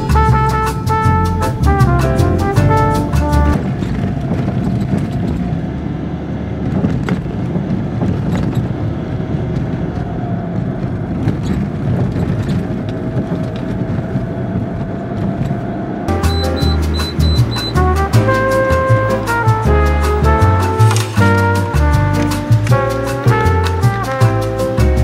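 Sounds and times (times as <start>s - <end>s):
music with brass: 0.0s - 3.6s, 16.1s - 25.0s
car tyres and engine rumble: 0.0s - 25.0s.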